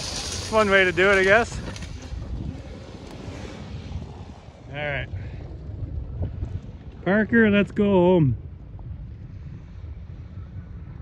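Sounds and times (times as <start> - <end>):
distant vehicle engine rumble: 0.0 - 11.0
wind buffeting microphone: 0.0 - 11.0.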